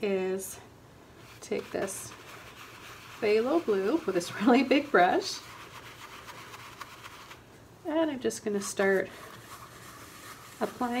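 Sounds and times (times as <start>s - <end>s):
paintbrush bristles rubbing: 1.2s - 7.5s, 8.3s - 11.0s.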